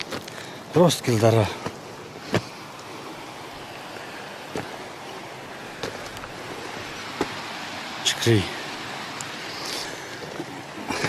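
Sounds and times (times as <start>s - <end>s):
footsteps on stony ground: 0.0s - 3.0s, 3.9s - 4.9s, 5.6s - 7.6s.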